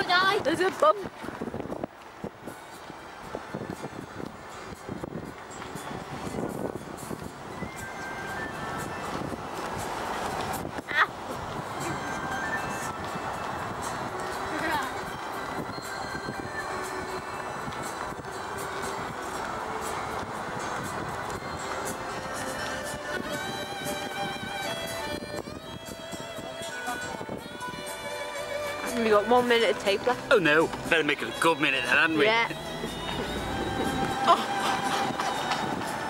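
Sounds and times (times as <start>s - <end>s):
wind on microphone: 0.0s - 29.0s, 32.5s - 36.0s
vehicle road noise from inside: 0.0s - 36.0s.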